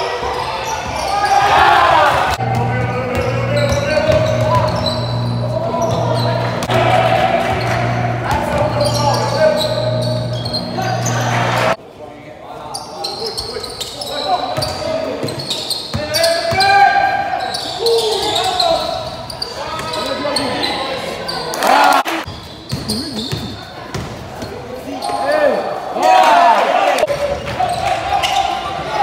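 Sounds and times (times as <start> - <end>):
crowd and player voices: 0.0 - 29.0.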